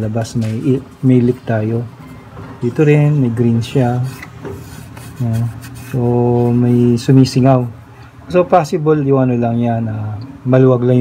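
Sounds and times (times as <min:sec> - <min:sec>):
person speaking: 0:00.0 - 0:02.0, 0:02.6 - 0:11.0
fingers rubbing rubber hose: 0:04.0 - 0:06.7.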